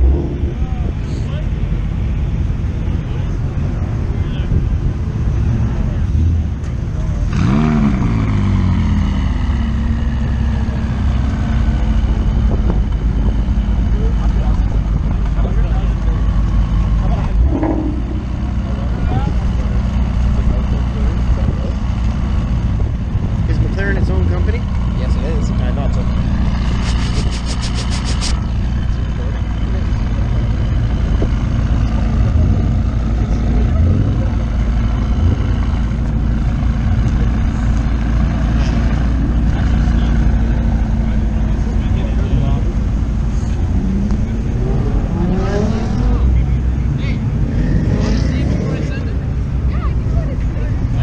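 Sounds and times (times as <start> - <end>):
car engine idling and revving: 0.0 - 51.0.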